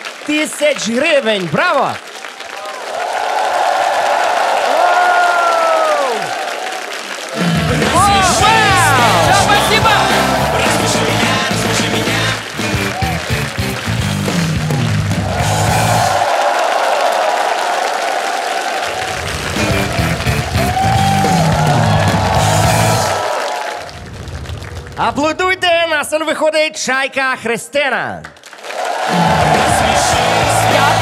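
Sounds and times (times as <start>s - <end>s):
audience applauding: 0.0s - 25.1s, 28.2s - 31.0s
loud music with bass line: 7.4s - 16.2s, 19.3s - 23.2s, 29.2s - 31.0s.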